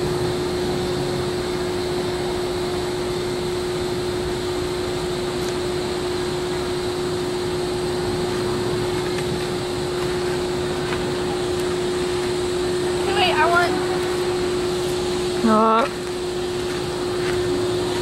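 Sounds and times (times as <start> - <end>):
steady mechanical hum: 0.0 - 18.0.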